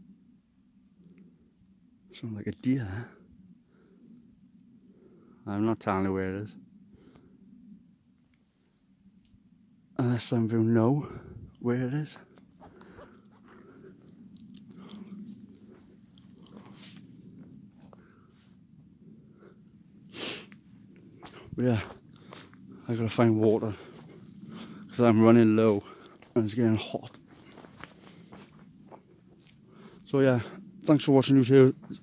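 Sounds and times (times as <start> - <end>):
low steady rumble: 0.0 - 32.0
faint footsteps on dirt path: 11.0 - 19.0, 19.9 - 32.0
footsteps crunching over twigs: 25.9 - 29.6.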